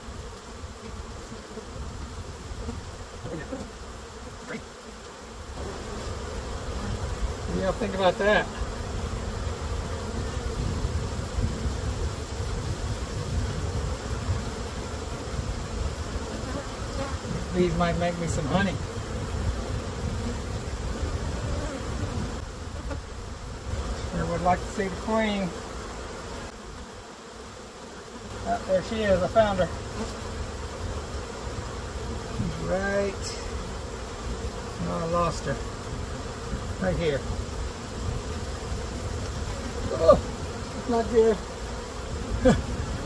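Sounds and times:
bees buzzing: 0:00.0 - 0:43.0.

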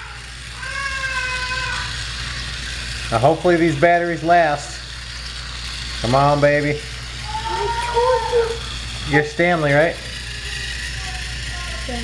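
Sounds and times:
toy train motor whirring: 0:00.0 - 0:12.0.

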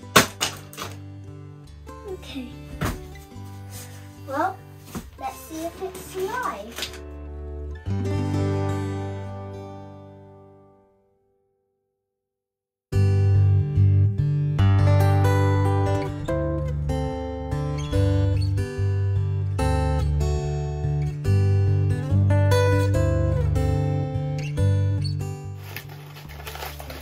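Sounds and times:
acoustic guitar music: 0:00.0 - 0:11.1, 0:12.9 - 0:27.0
paper crinkling: 0:03.4 - 0:07.0, 0:25.6 - 0:27.0.

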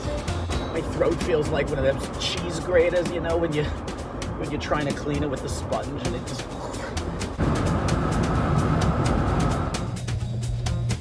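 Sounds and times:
car road and wind noise: 0:00.0 - 0:11.0.

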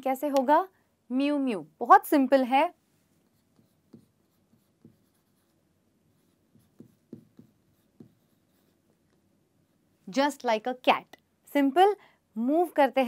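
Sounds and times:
marker pen writing on whiteboard: 0:03.2 - 0:09.9.

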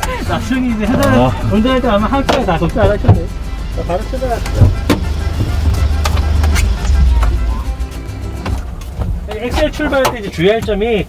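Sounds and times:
truck engine idling: 0:00.0 - 0:11.0
knocks of people moving in seats: 0:04.5 - 0:11.0.

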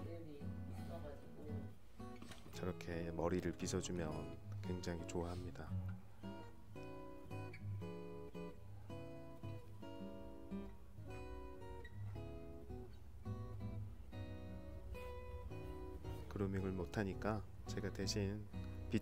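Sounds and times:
acoustic guitar strumming chords: 0:00.0 - 0:19.0.

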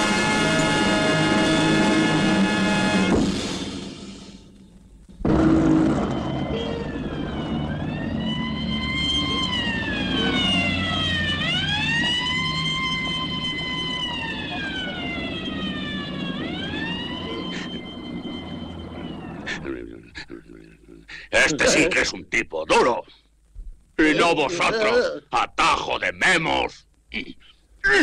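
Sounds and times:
wailing siren: 0:00.0 - 0:03.2, 0:05.2 - 0:19.6.

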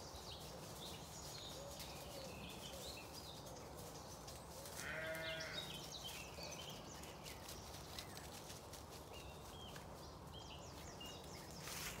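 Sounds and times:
small birds chirping: 0:00.0 - 0:12.0
sheep bleating: 0:04.8 - 0:05.7.

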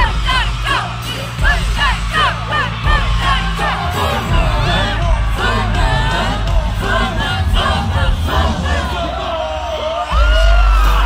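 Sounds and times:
crowd screaming and cheering: 0:00.0 - 0:11.0
loud pop music with heavy bass: 0:00.0 - 0:11.0.

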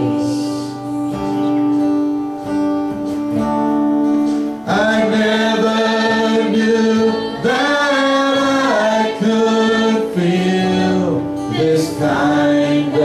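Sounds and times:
band playing slow song: 0:00.0 - 0:13.0
singers holding long notes: 0:04.6 - 0:13.0.

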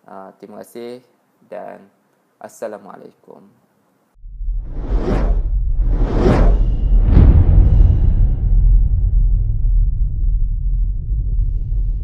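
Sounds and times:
deep low rumble: 0:04.2 - 0:12.0
whoosh: 0:04.2 - 0:12.0.

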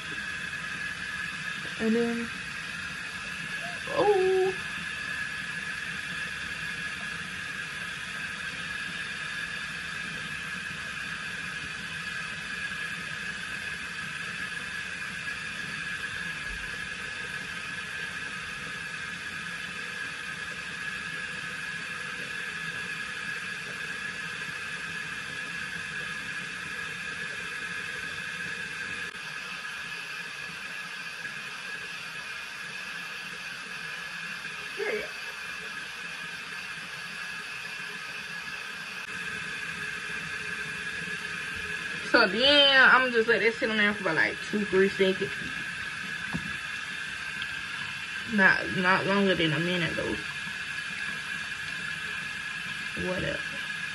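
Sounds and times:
facial brush buzzing whine: 0:00.0 - 0:53.9.

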